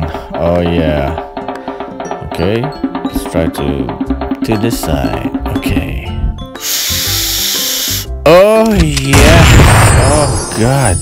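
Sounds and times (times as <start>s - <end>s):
background music: 0.0s - 11.0s
person sniffing deeply: 6.6s - 8.1s.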